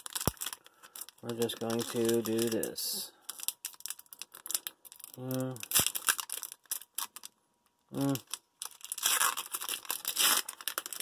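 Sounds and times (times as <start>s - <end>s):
foil wrapper crinkling: 0.0s - 7.4s, 8.0s - 11.0s.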